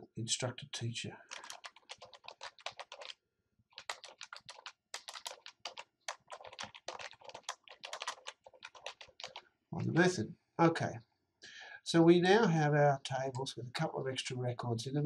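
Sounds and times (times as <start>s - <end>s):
keyboard typing: 1.3s - 9.4s.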